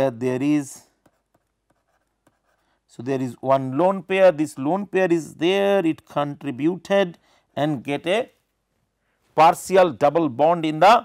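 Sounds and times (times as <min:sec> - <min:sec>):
stylus scratching on pen tablet: 0:00.8 - 0:03.0.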